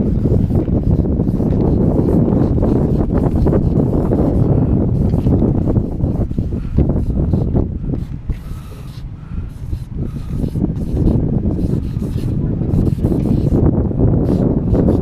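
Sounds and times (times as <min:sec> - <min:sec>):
gusty wind buffeting microphone: 0:00.0 - 0:15.0.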